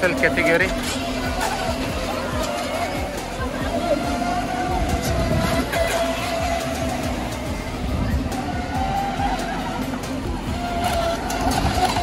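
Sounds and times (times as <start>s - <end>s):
background music: 0.0s - 12.0s
rc boat motor whine: 0.0s - 12.0s.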